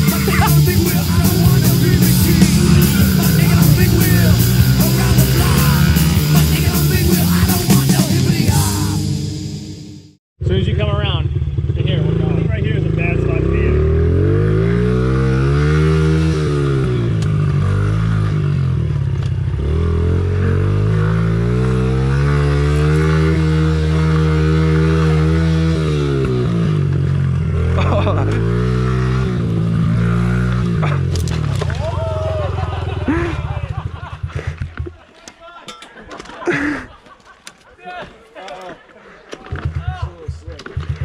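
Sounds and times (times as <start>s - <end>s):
small motorbike engine revving: 0.0s - 8.6s, 11.2s - 34.6s.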